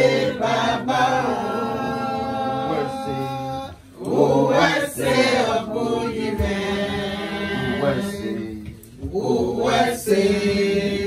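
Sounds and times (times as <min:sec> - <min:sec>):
group singing a chant: 0:00.0 - 0:11.0.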